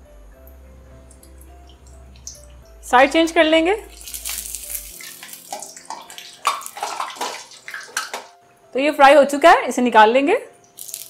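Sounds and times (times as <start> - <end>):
soft background music: 0.0 - 11.0
hot oil sizzling: 1.1 - 8.3, 10.7 - 11.0.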